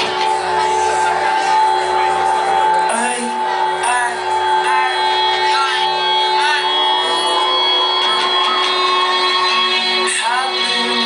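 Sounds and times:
live amplified electric guitar music: 0.0 - 11.0.

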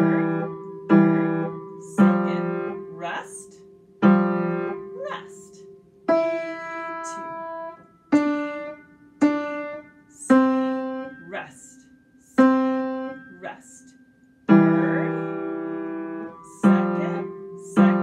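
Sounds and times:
upright piano single notes: 0.0 - 18.0.

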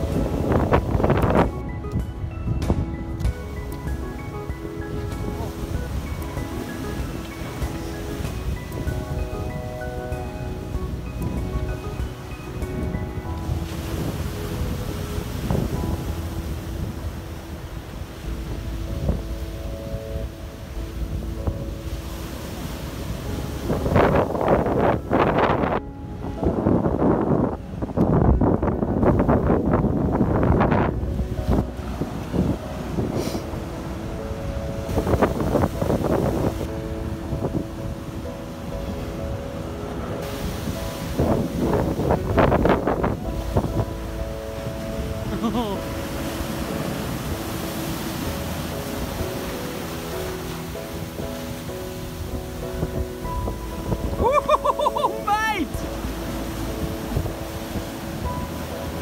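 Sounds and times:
surf breaking over rocks: 0.0 - 59.0
wind buffeting microphone: 0.0 - 59.0.

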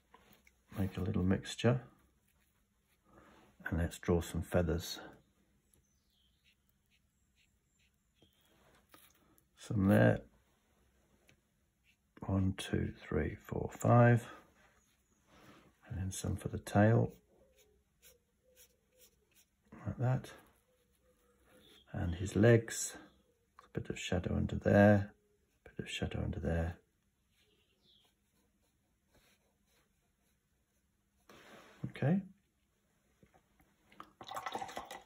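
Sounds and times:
water splashing in pot: 34.0 - 35.0.

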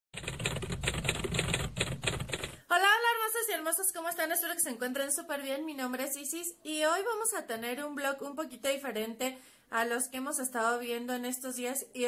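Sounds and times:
typewriter clacking: 0.2 - 2.6
woman speaking: 2.7 - 12.0.

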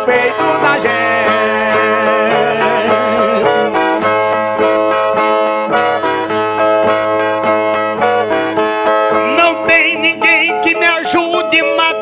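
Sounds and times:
plucked steel-string guitar: 0.0 - 11.5.

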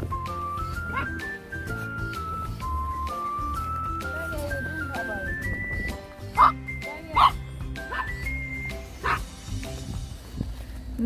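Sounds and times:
cheerful background music: 0.0 - 11.0
small dog barking: 0.9 - 1.2, 6.4 - 8.2, 9.0 - 9.3.

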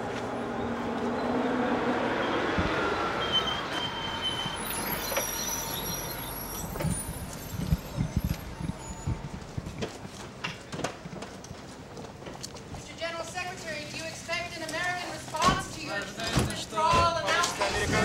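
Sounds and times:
car engine and tyre noise: 0.0 - 12.8
thin high whines: 2.1 - 9.1.

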